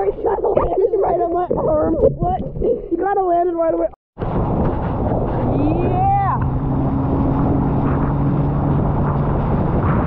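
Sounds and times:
rushing wind and water: 0.0 - 10.0.

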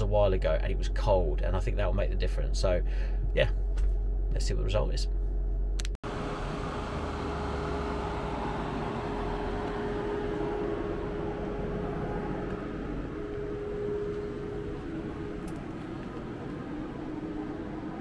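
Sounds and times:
thin constant whine: 3.6 - 18.0
cooling fan whoosh: 6.0 - 18.0.

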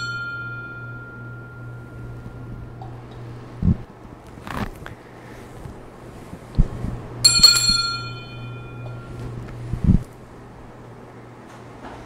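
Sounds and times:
altar bell ringing: 0.0 - 3.0, 7.2 - 9.2
steady low hum: 0.0 - 12.0.

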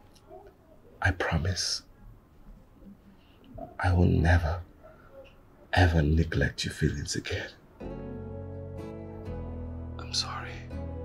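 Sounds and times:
soft background music chords: 7.6 - 11.0.

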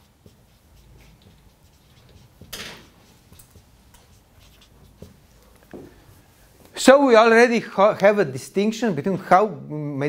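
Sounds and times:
marker scratching on whiteboard: 0.0 - 6.3.

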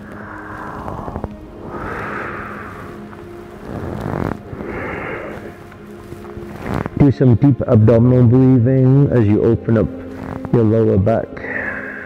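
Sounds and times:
man breathing deeply: 0.0 - 6.8, 11.4 - 12.0
soft background music: 0.0 - 12.0.

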